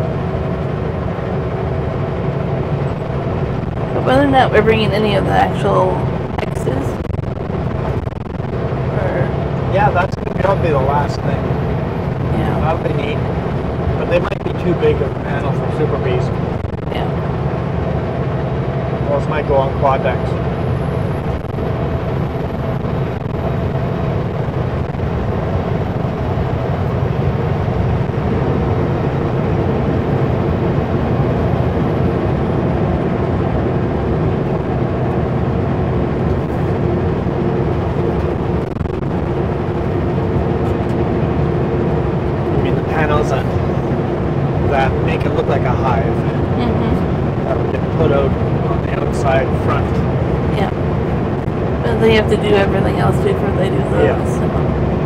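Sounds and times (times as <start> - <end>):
road noise: 0.0 - 55.0
truck engine drone: 0.0 - 55.0.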